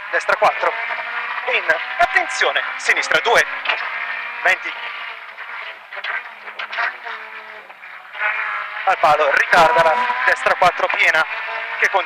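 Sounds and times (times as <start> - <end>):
muffled car engine revving: 0.0 - 12.0.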